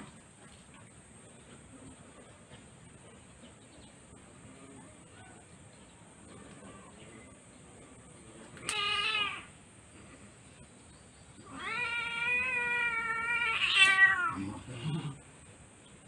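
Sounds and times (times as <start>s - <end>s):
cat meowing: 8.6s - 9.5s, 11.4s - 14.5s.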